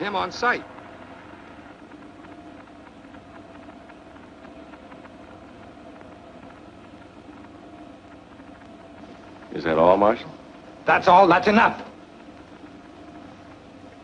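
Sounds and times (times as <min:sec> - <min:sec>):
low hum: 0:00.0 - 0:14.0.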